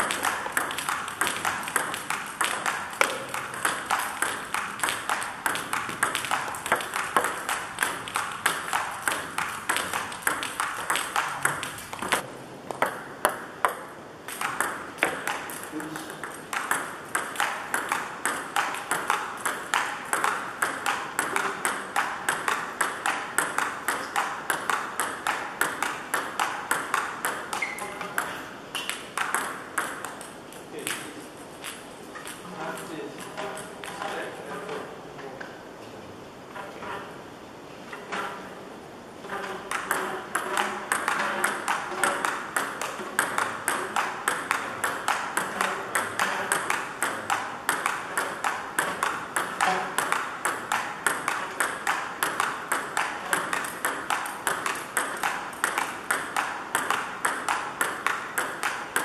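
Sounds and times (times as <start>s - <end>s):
table tennis ball clicks: 0.0s - 34.8s, 39.2s - 59.0s.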